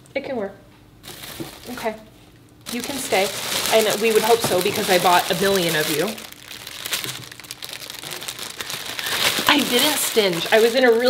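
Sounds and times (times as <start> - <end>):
plastic wrapping crinkling: 1.0 - 1.9, 2.6 - 11.0.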